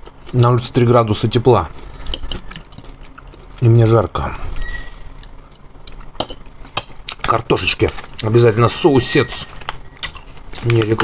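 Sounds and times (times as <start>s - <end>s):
person eating salad: 1.7s - 3.7s, 5.0s - 7.2s.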